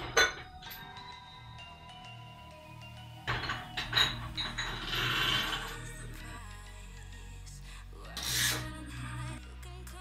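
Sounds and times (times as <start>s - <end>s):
background music: 0.0s - 10.0s
metal scraping on metal: 3.3s - 6.0s.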